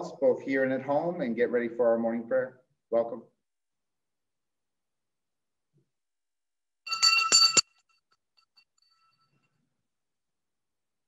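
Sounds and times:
small bell ringing: 0:06.9 - 0:09.5.

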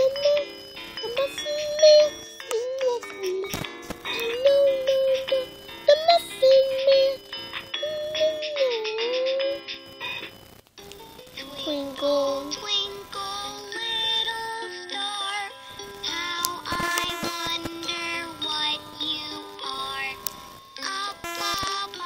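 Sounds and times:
synthetic singing voice: 0:00.0 - 0:07.2, 0:07.8 - 0:09.6, 0:11.4 - 0:22.0
toy electronic melody: 0:00.0 - 0:10.2.

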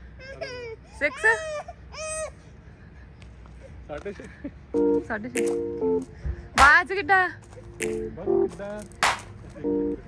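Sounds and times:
electronic beep chord: 0:04.8 - 0:06.0, 0:07.8 - 0:08.5.

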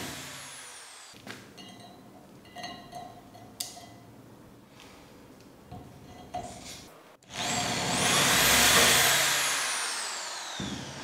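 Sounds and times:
electric drill motor whine: 0:00.0 - 0:01.1, 0:07.3 - 0:11.0.

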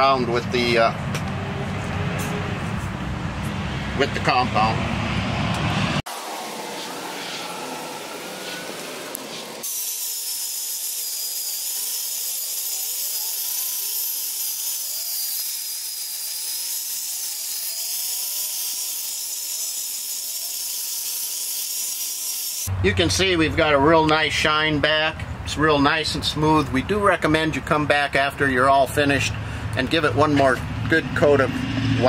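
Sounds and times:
electric buffer whining: 0:03.6 - 0:22.7.

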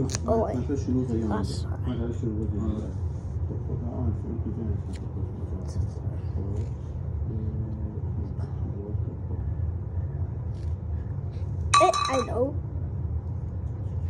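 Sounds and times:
steady low rumble: 0:00.0 - 0:14.0.

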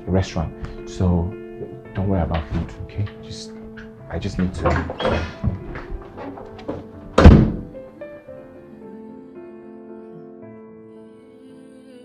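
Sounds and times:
soft background music: 0:00.0 - 0:12.0
door shutting: 0:02.0 - 0:07.8.

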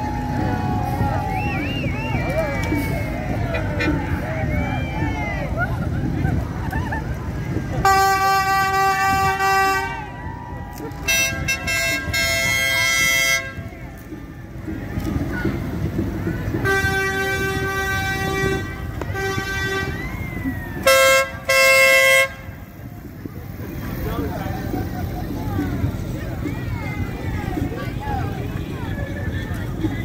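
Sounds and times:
low rumble of passing vehicles: 0:00.0 - 0:30.0
onlookers' voices: 0:00.0 - 0:30.0
vehicle horns honking: 0:02.8 - 0:04.3, 0:07.8 - 0:10.1, 0:11.0 - 0:13.7, 0:16.5 - 0:20.1, 0:20.8 - 0:22.7.

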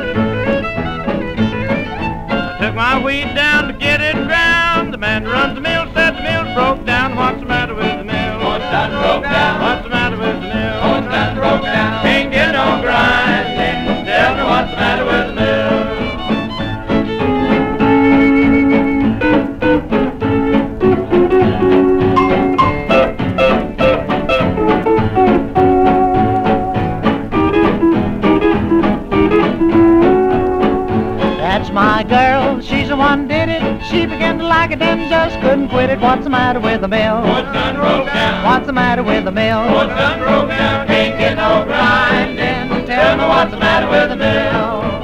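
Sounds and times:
western swing band playing: 0:00.0 - 0:45.0.

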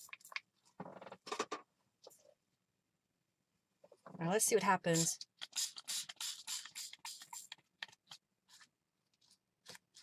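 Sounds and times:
spray bottle spritzes: 0:04.9 - 0:07.6.

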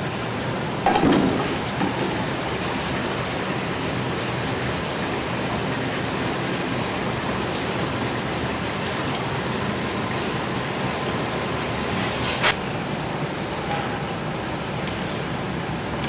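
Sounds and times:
water gushing into a tank: 0:00.0 - 0:13.4
spout knocking: 0:00.9 - 0:02.4.

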